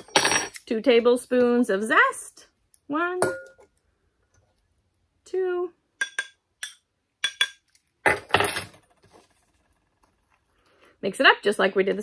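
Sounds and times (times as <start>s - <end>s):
metal spoon clinking on glass bowl: 3.2s - 3.6s.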